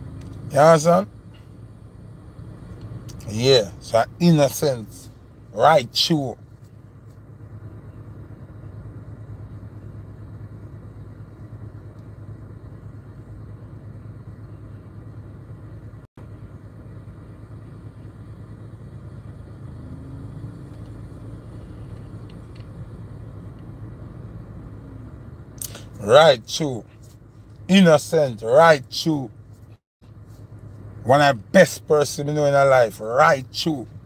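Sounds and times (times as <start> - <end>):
car rumble inside cabin: 0.0 - 34.0.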